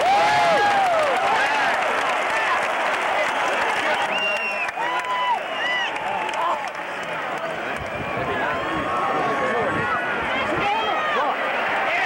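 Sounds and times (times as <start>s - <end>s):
stadium crowd voices calling out: 0.0s - 12.0s.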